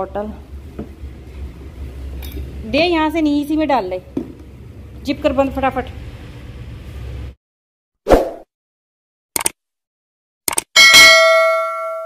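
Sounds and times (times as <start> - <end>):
quick clicks: 9.4 - 9.6, 10.5 - 10.7
bell ding: 10.8 - 12.0.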